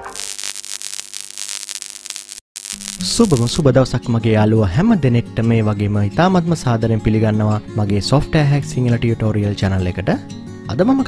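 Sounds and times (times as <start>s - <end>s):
digital glitch static: 0.0s - 3.6s
intro music: 2.6s - 3.9s.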